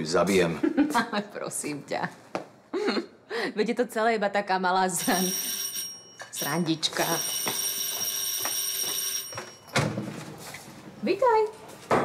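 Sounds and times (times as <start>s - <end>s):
electric doorbell ringing: 5.0s - 9.9s.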